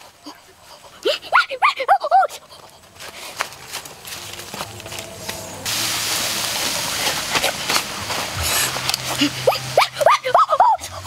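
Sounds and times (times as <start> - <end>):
high-pitched yelping cries: 1.1 - 2.4, 9.4 - 10.9.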